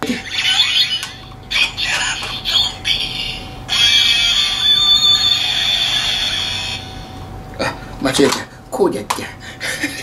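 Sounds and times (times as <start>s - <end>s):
high electronic buzzing tone: 0.1s - 7.4s.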